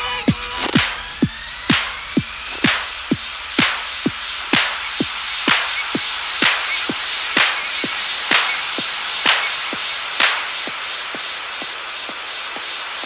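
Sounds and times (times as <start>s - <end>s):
kick drum beat: 0.0s - 12.7s
hi-hat ticks: 0.0s - 13.0s
noisy synth wash: 0.0s - 13.0s
clap hits: 0.6s - 13.0s.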